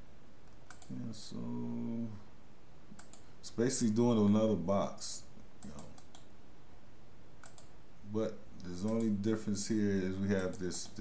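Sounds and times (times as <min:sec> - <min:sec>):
low steady background hiss: 0:00.0 - 0:11.0
computer mouse buttons clicking: 0:00.4 - 0:01.0, 0:02.9 - 0:03.3, 0:05.6 - 0:06.3, 0:07.4 - 0:07.8, 0:08.6 - 0:09.2, 0:10.3 - 0:11.0.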